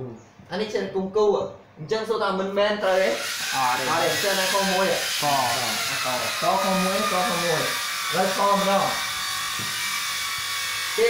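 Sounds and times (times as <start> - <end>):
steady hiss: 2.8 - 9.2.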